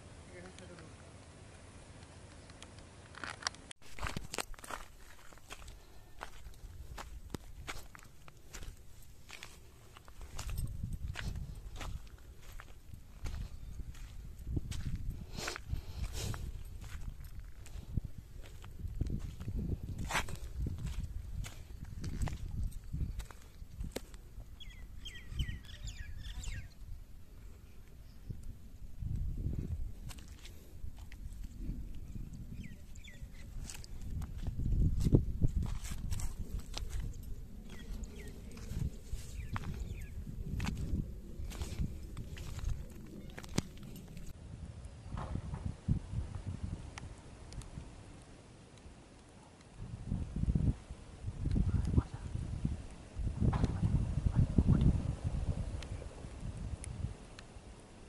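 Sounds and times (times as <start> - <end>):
footsteps crunching on soil: 3.1 - 24.6, 29.0 - 31.8, 32.7 - 44.4
wind rumble: 3.8 - 48.2, 49.7 - 58.0
microphone handling noise: 53.2 - 56.0.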